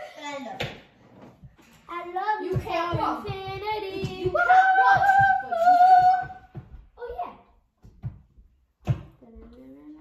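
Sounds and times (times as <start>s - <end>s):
child singing long notes: 4.2s - 6.4s.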